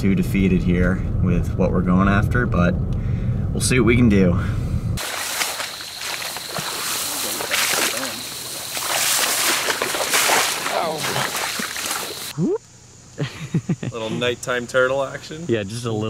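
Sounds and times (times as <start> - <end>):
water sloshing and splashing: 5.0 - 12.3.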